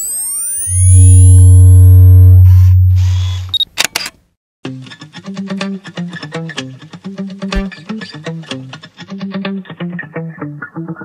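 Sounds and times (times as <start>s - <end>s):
deep bass drone: 0.6s - 3.5s
camera shutter clicks: 3.5s - 4.2s
plucked guitar music: 4.6s - 11.0s.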